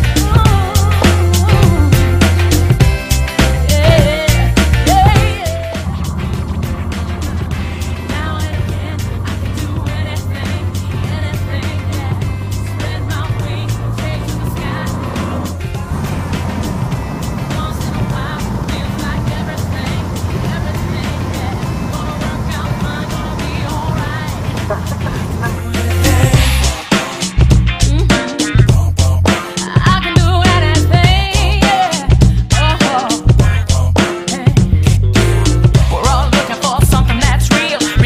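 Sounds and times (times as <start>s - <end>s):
background music with steady beat: 0.0s - 38.0s
propeller aircraft engine at high power: 4.4s - 27.2s.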